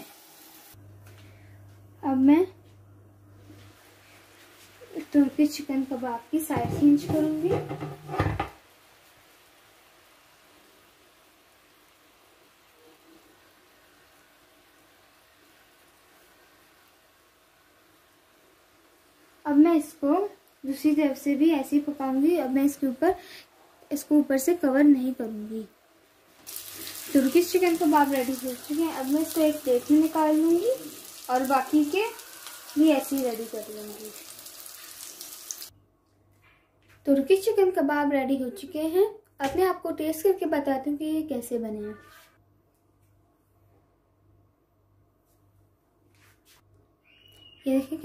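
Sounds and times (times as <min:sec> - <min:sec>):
meat sizzling in a frying pan: 0:00.0 - 0:00.8, 0:26.4 - 0:35.7
skewers sizzling in oil: 0:00.0 - 0:00.8, 0:03.6 - 0:35.7.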